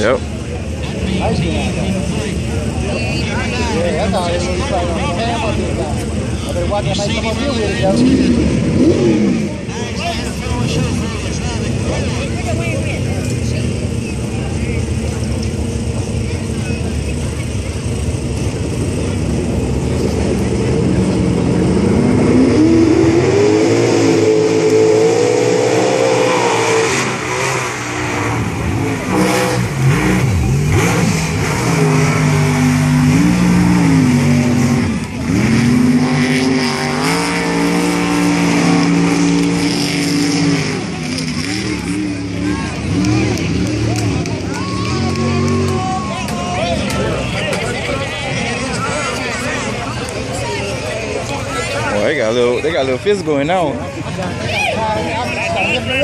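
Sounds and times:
truck engines at full throttle: 0.0 - 56.0.

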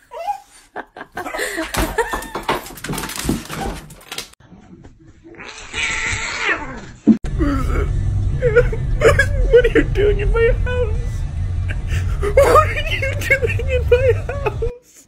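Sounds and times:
car rumble: 7.2 - 14.7.

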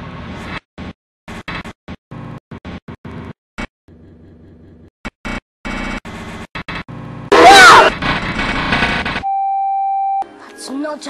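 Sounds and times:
noisy chaotic clamour: 7.3 - 9.2
electronic beep tone: 9.2 - 10.3.

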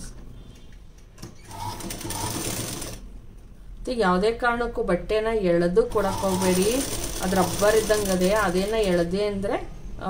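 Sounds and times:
sewing machine stitching: 1.4 - 3.0, 6.0 - 9.0.

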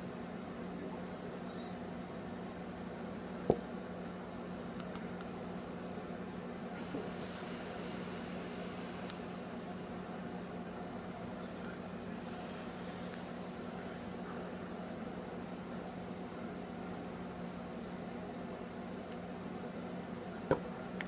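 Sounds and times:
vapor breathy hisses: 6.6 - 10.0, 12.0 - 14.7.

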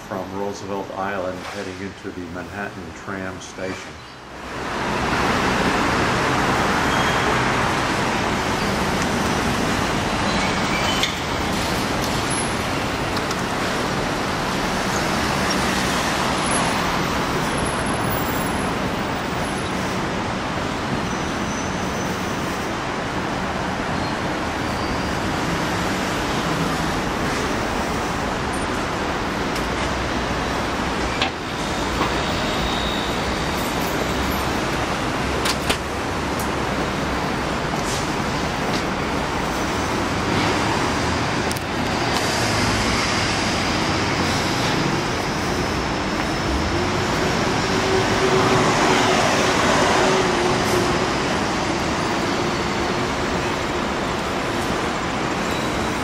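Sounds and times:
city street traffic: 0.0 - 56.0
bus passing: 3.7 - 56.0.

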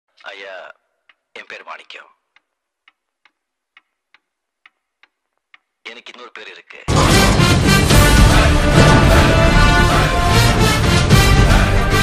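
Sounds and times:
clock ticking: 1.0 - 6.9.

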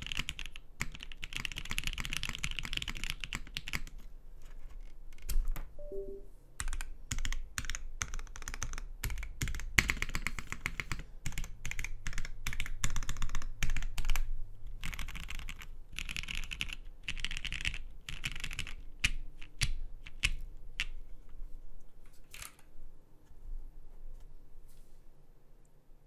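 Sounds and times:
mechanical keyboard typing: 0.0 - 5.9, 6.6 - 21.0.

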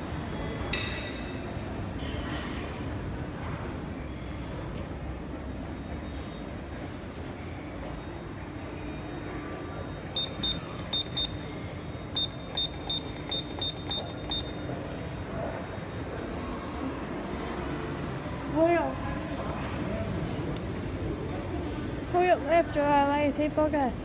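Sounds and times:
short high button beeps: 10.1 - 11.5, 12.1 - 14.7.

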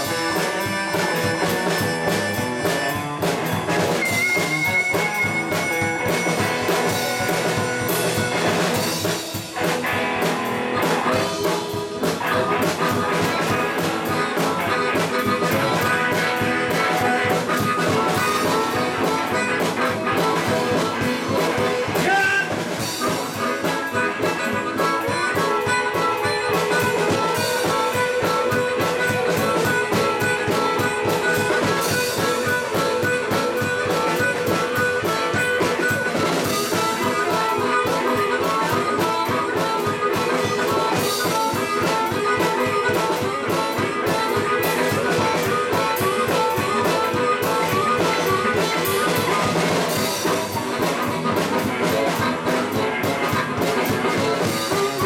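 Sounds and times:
amplified harmonica: 0.0 - 55.0
drum kit: 0.0 - 55.0
electric guitar: 0.0 - 55.0.

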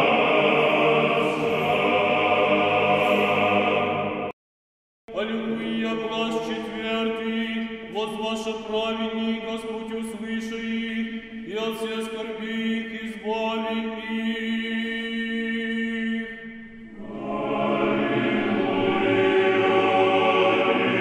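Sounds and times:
voices singing a slow hymn: 0.0 - 4.3, 5.1 - 21.0.

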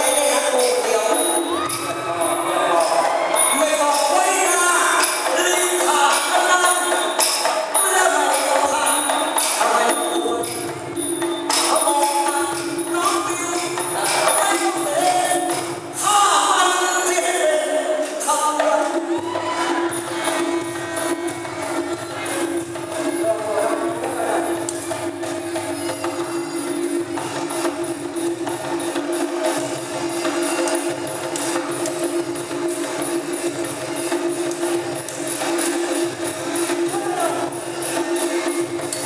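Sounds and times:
fast percussion strokes: 0.0 - 39.0.

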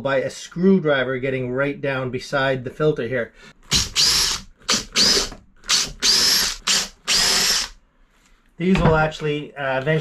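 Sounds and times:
cordless drill whining: 3.7 - 7.8.

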